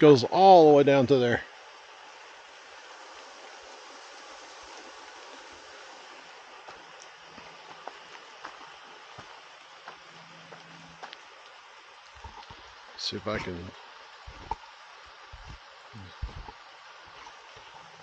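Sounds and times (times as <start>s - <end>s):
light rain hiss: 0.0s - 18.0s
raindrop ticks: 6.6s - 17.9s.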